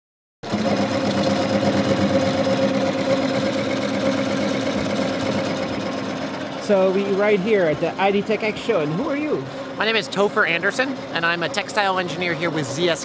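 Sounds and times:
embroidery machine stitching: 0.4 - 13.0.

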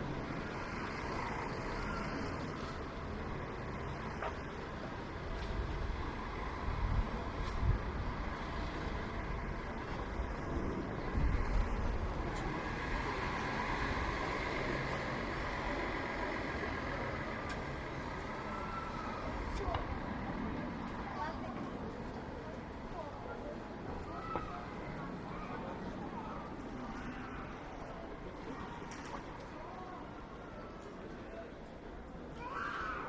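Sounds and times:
passers-by talking: 0.0 - 33.0
road traffic passing: 0.0 - 33.0.

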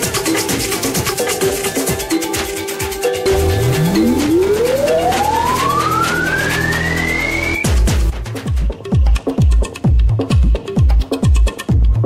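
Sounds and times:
synth riser sweeping upward: 3.2 - 7.6
low bass notes: 3.3 - 7.4.

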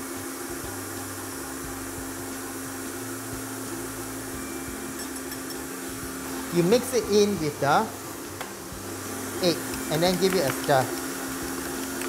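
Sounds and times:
stand mixer running: 0.0 - 12.0.

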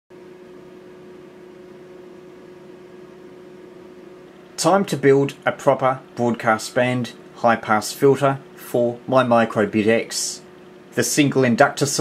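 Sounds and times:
faint hum tone: 0.1 - 12.0.

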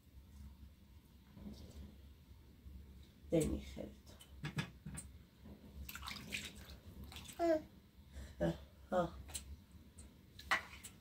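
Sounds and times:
water splashing in a bowl: 5.8 - 7.4
baby babbling: 7.4 - 7.7.

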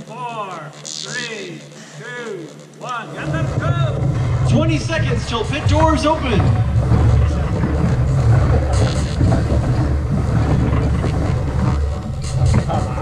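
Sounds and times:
faint voices: 0.0 - 13.0
steady low rumble: 2.9 - 13.0.

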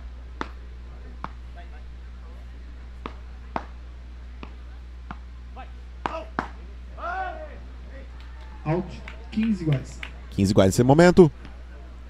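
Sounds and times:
paddles hitting ball: 3.0 - 3.8, 6.0 - 6.6.

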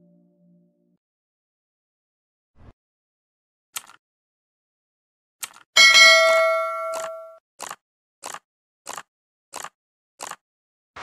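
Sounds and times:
short clicks: 3.8 - 4.0, 6.9 - 10.4
bell chime ringing: 5.8 - 7.4.

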